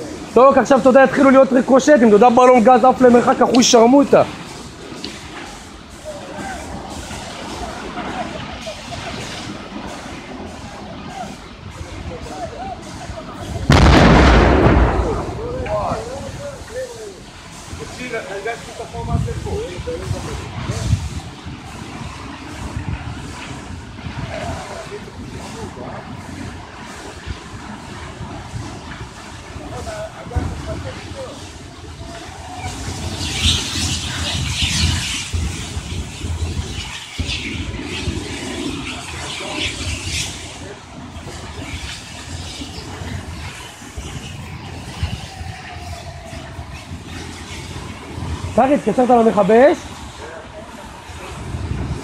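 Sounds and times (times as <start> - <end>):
voices talking: 0.0 - 27.8
hissing: 0.0 - 51.9
low rumbling noise: 0.0 - 52.0.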